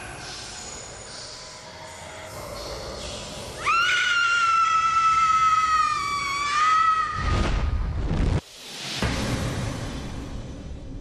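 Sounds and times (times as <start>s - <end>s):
long high-pitched scream: 3.6s - 7.3s.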